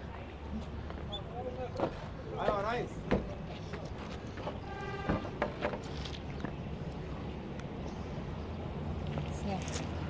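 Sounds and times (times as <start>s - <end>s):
outdoor crowd ambience: 0.0s - 10.0s.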